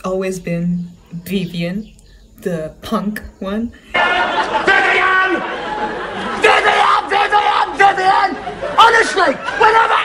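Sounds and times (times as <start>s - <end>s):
laughter: 3.9s - 6.6s, 8.4s - 9.9s
people shouting and talking: 3.9s - 10.0s.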